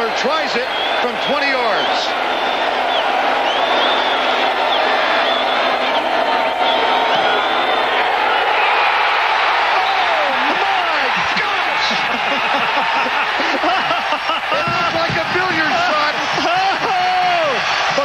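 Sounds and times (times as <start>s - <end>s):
crowd shouts and whoops: 0.0s - 18.0s
stadium crowd roaring: 0.0s - 18.0s.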